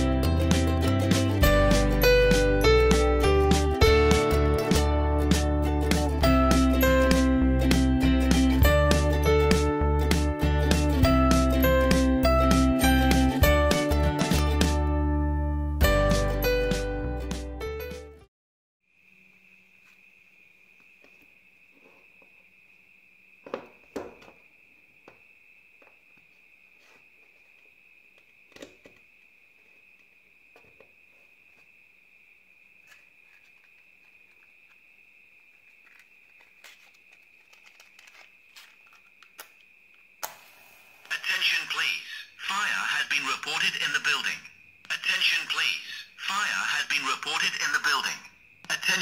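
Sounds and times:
recorded voice warning from speaker: 41.1s - 49.0s.

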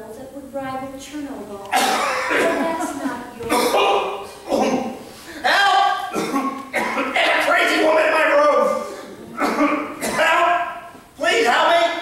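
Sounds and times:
man coughing and groaning: 1.7s - 2.6s, 3.5s - 5.0s, 6.0s - 7.5s, 8.7s - 10.4s.

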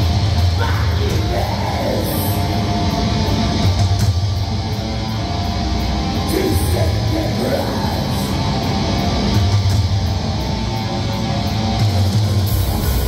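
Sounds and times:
bass guitar: 0.0s - 13.0s
electric guitar: 0.0s - 13.0s.

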